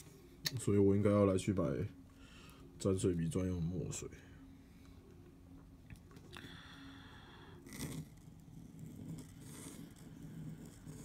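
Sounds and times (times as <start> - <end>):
pen nib scratching paper: 7.6 - 11.0.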